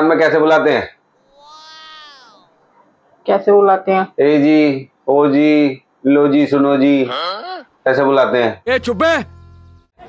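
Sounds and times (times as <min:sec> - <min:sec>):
people talking: 0:08.7 - 0:09.3.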